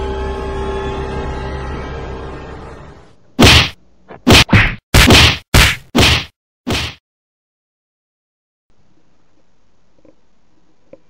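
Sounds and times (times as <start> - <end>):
sharp whacking hits: 3.4 - 7.0.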